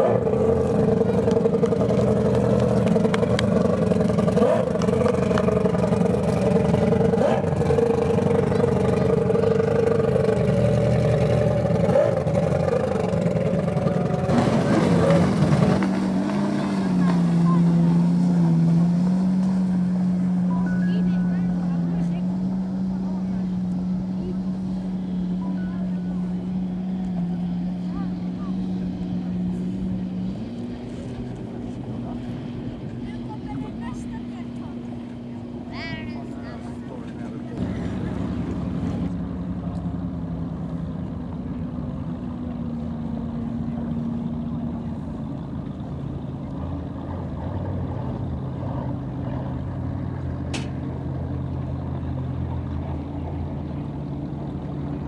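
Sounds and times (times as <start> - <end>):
outboard engines droning: 0.0 - 55.0.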